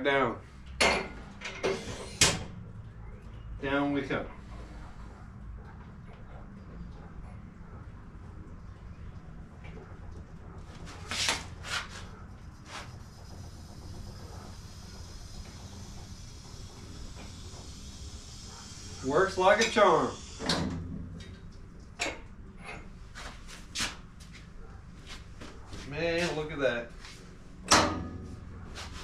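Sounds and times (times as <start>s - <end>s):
motorcycle lift humming: 27.5s - 29.0s.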